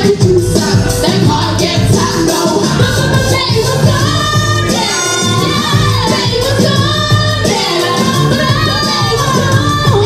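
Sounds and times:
amplified pop music with beat: 0.0s - 10.0s
women singing into microphones: 0.0s - 10.0s.

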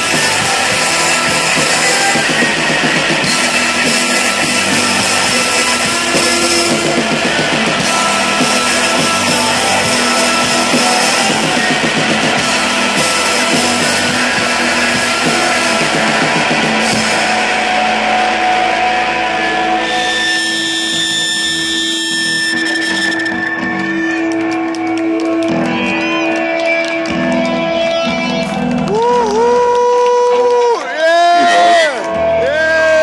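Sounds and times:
long held guitar tones: 0.0s - 30.3s
rock band playing loud: 0.0s - 33.0s.

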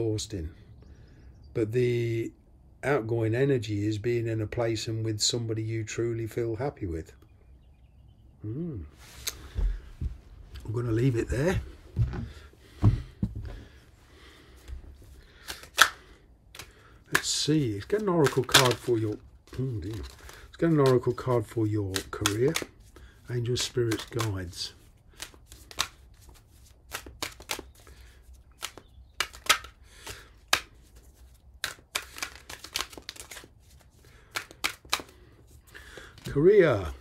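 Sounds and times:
cards tapping and snapping: 15.3s - 36.4s.

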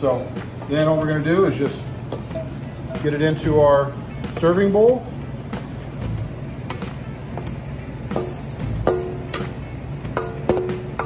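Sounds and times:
soft background music: 0.0s - 11.0s
metal spoon clinking on bowl: 10.2s - 11.0s.

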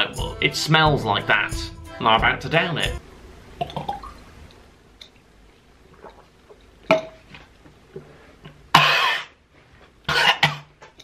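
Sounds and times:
wet swallowing: 5.9s - 6.7s.

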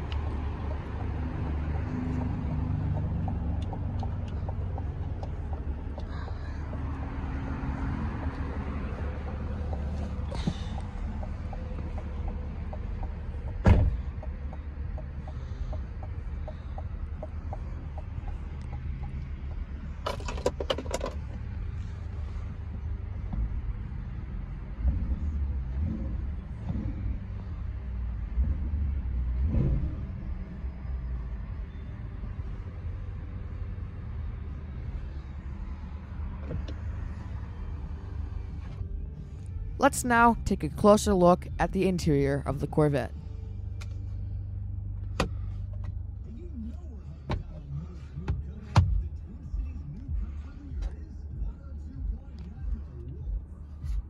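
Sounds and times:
car engine idling: 0.0s - 54.0s.

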